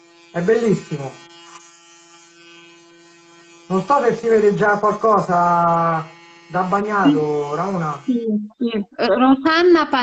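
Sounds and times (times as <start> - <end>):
electric hair clipper buzzing: 0.0 - 8.2.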